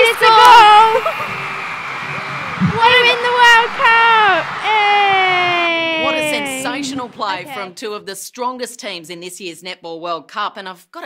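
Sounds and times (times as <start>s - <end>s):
woman cheering into microphone: 0.0s - 1.5s, 2.6s - 7.7s
second voice cheering: 2.6s - 7.7s.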